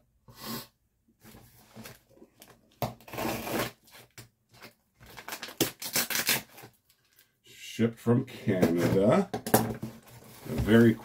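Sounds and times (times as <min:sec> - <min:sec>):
packing tape tearing: 0:02.8 - 0:04.1, 0:05.1 - 0:06.8
cardboard scraping and rustling: 0:09.8 - 0:11.0.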